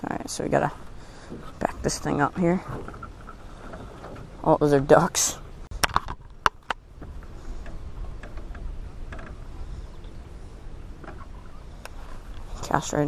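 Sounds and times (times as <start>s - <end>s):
boat engine rumble: 0.0s - 13.0s.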